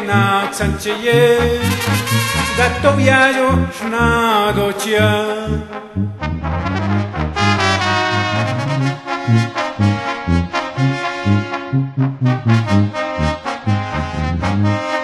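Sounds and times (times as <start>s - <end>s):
low bass line: 0.0s - 15.0s
trumpets and trombones melody: 0.0s - 15.0s.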